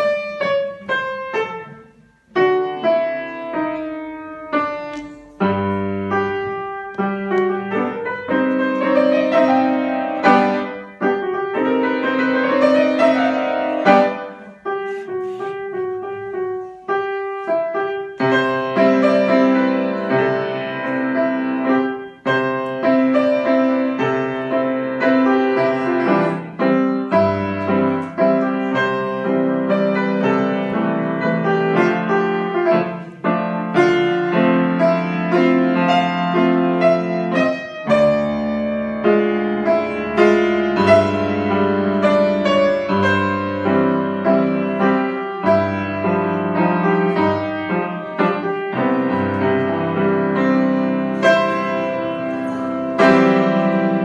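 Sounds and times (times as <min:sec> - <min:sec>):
grand piano playing: 0:00.0 - 0:54.0.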